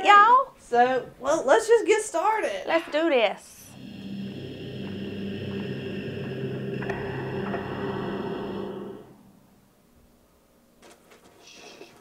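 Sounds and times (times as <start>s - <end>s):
synthesized drone: 3.7s - 9.7s.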